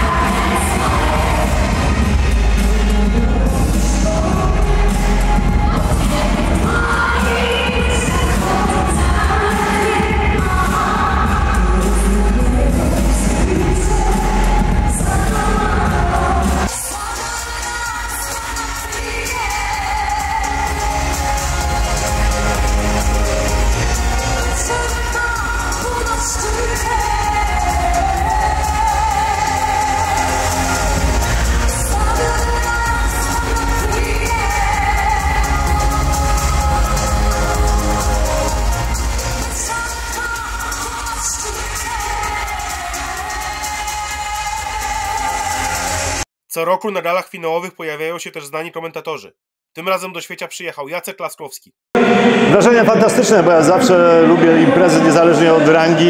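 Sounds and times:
pop backing track with heavy bass: 0.0s - 46.2s
woman singing into a microphone: 0.0s - 46.2s.

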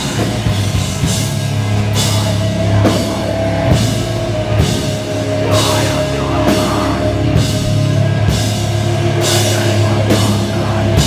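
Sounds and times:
bass guitar: 0.0s - 11.0s
distorted electric guitar: 0.0s - 11.0s
drum kit: 0.0s - 11.0s.

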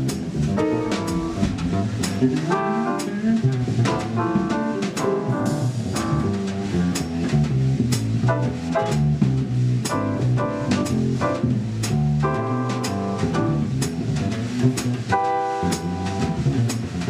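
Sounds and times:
chords: 0.0s - 7.3s, 8.1s - 14.0s
double bass: 0.0s - 17.0s
drum kit with cymbal strokes: 0.0s - 17.0s.

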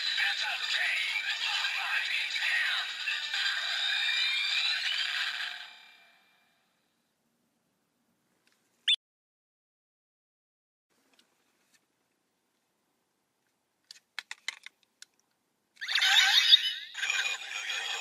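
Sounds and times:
toy playing electronic music: 0.0s - 5.8s.

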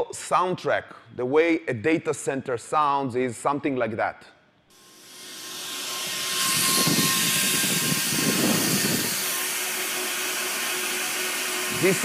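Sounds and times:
cooling fans whooshing: 5.4s - 12.0s.

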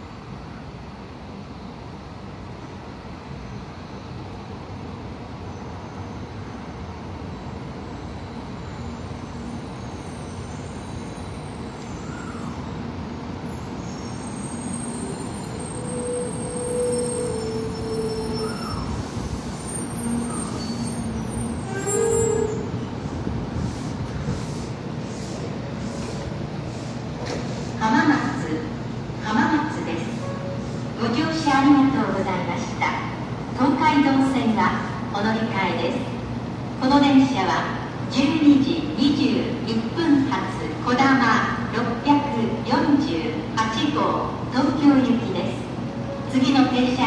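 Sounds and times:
train braking whine: 0.0s - 28.5s
train rushing noise: 7.2s - 31.4s.

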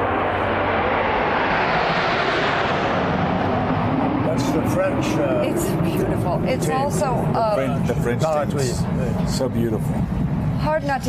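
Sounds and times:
jets flying over: 0.0s - 11.0s.

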